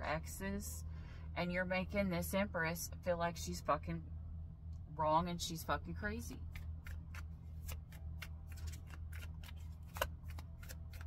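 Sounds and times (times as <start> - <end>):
steady low hum: 0.0 - 11.0
cards being shuffled by hand: 6.3 - 11.0.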